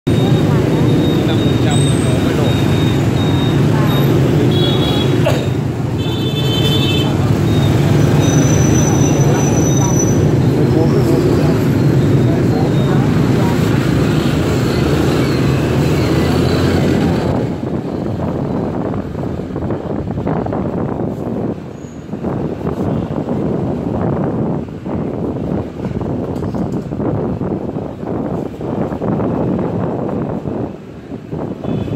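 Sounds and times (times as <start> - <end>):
voices: 0.1 - 18.2
scooter and motorbike traffic: 0.1 - 31.9.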